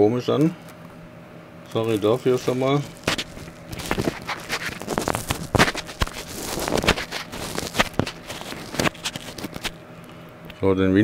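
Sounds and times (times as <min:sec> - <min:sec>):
microphone handling scratching: 0:01.7 - 0:09.8.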